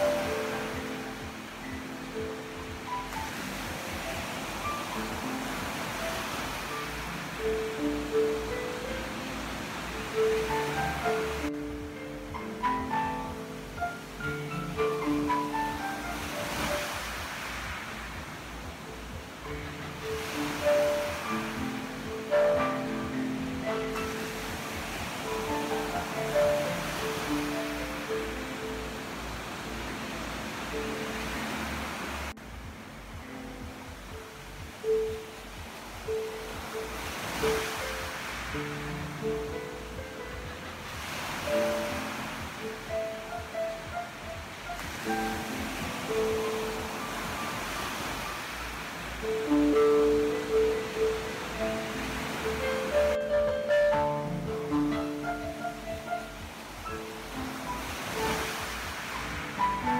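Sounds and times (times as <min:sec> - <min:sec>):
ocean surf waves: 0:00.0 - 0:59.9
solo piano improvisation: 0:00.0 - 0:59.9.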